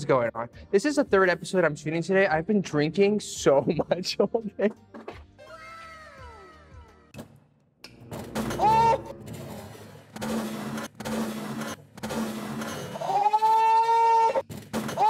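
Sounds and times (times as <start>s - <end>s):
music: 0.0s - 11.5s
people crying out in alarm: 8.5s - 9.1s.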